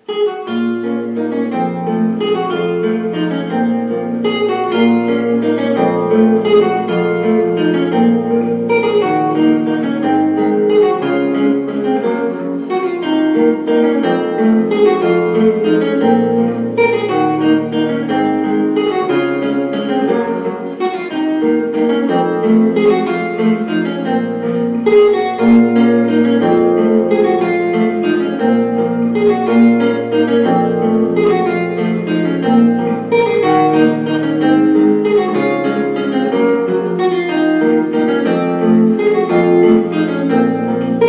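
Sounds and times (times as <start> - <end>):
classical guitar fingerstyle waltz: 0.0 - 41.0.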